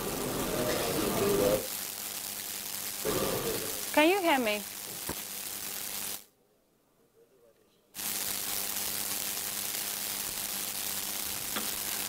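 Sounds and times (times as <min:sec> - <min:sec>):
indistinct voices: 0:03.0 - 0:04.2.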